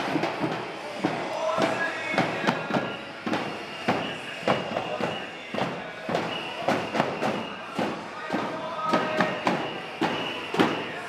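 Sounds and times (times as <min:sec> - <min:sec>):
crowd voices: 0:00.0 - 0:11.0
drums in march rhythm: 0:00.0 - 0:11.0.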